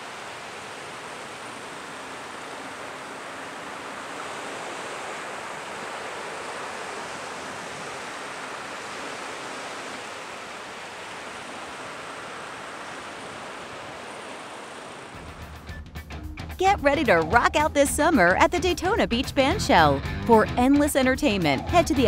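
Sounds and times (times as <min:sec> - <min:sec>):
waves washing over sand: 0:00.0 - 0:15.2.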